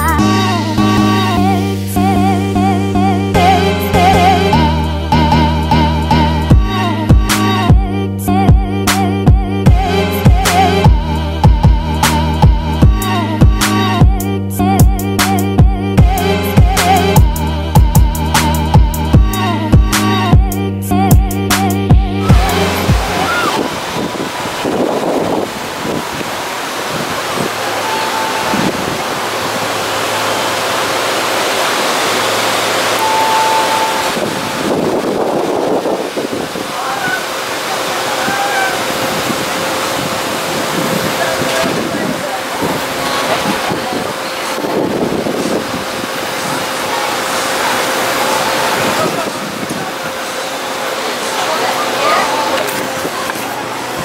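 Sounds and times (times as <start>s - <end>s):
wind on microphone: 22.2s - 29.8s, 33.0s - 37.2s, 38.2s - 46.8s, 48.6s - 50.2s
ocean surf washing onto beach: 22.2s - 54.0s
faint voices talking: 36.5s - 54.0s.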